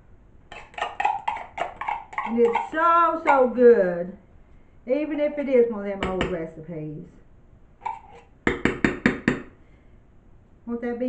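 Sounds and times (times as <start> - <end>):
spoon knocking on tin can: 0.5 - 3.6, 7.8 - 9.5.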